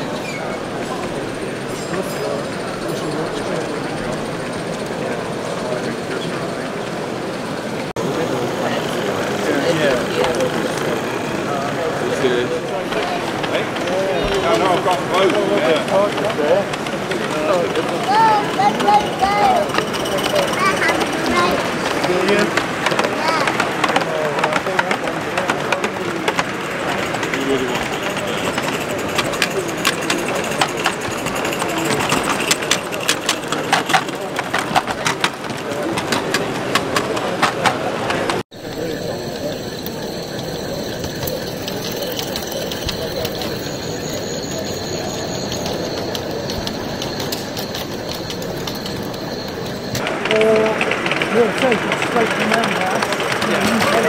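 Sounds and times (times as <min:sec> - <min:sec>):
crowd chatter in a hall: 0:00.0 - 0:54.0.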